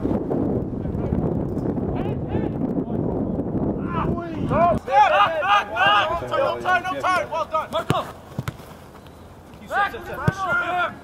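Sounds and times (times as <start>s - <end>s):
wind rumbling on microphone: 0.0s - 6.3s
distant shouts: 3.8s - 11.0s.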